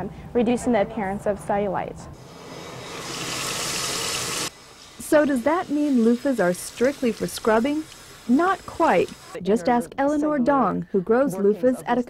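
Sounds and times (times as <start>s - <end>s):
running water rushing: 2.2s - 9.4s.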